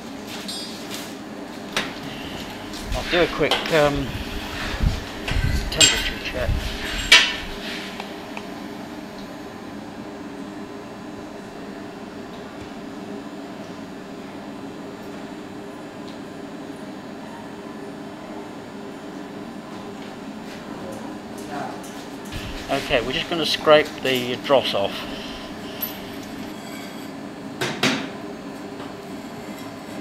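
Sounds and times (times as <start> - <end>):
machine hum: 1.5 - 15.8, 22.2 - 27.5.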